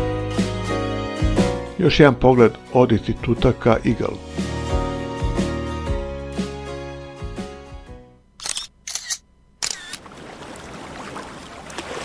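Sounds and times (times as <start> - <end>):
camera shutter clicks: 8.4 - 10.0.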